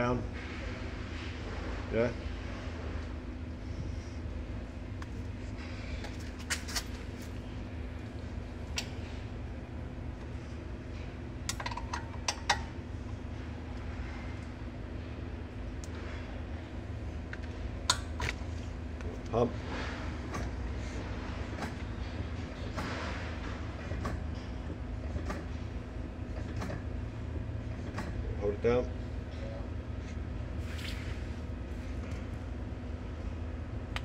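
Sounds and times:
steady low hum: 0.0s - 34.0s.

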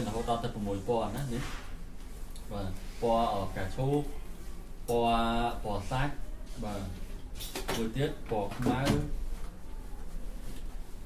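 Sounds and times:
low steady hum: 0.0s - 11.0s
man speaking: 2.5s - 4.2s, 4.9s - 7.0s.

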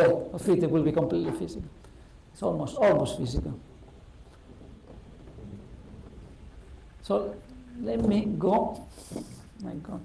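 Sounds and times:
sliding blackboard panels rumbling: 3.6s - 6.9s.

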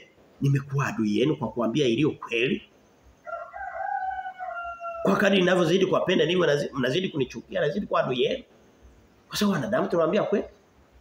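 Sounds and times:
rooster crowing: 3.2s - 5.3s.

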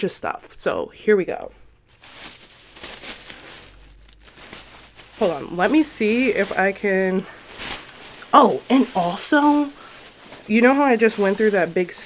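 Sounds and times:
plastic bag rustling: 1.9s - 12.0s.

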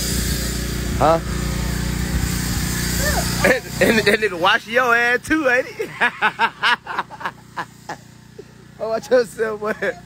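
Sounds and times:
man laughing: 3.1s - 4.6s, 5.4s - 10.0s.

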